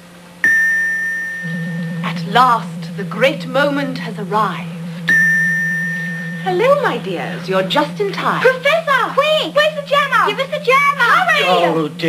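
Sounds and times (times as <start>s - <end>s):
low pulsing hum: 0.0s - 12.0s
bell-like chime: 0.4s - 3.0s, 5.0s - 6.9s.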